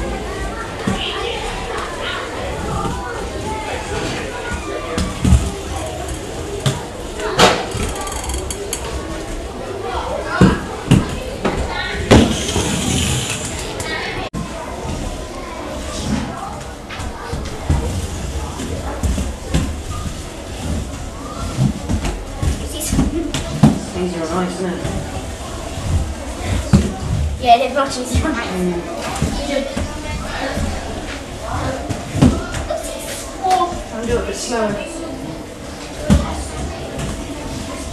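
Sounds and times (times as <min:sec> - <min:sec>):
people talking: 0:00.0 - 0:37.9
roller skate wheels rumbling: 0:10.8 - 0:14.2.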